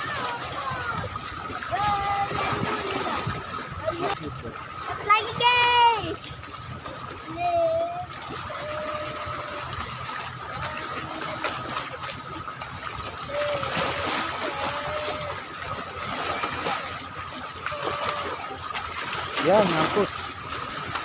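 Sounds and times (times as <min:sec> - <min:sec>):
waves lapping and splashing: 0:00.0 - 0:21.0.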